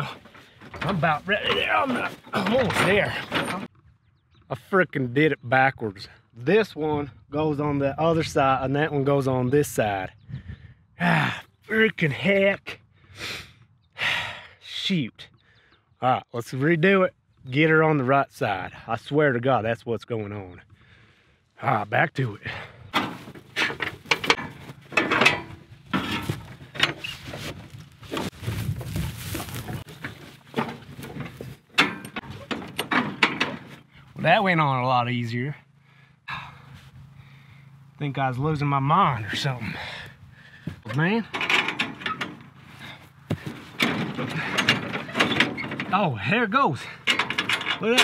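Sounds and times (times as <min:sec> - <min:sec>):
metal clanks and rattles: 0:00.0 - 0:03.9, 0:22.5 - 0:34.6, 0:39.3 - 0:48.0
metal parts clattering: 0:23.0 - 0:27.6, 0:41.3 - 0:42.6, 0:43.4 - 0:46.0, 0:47.0 - 0:48.0.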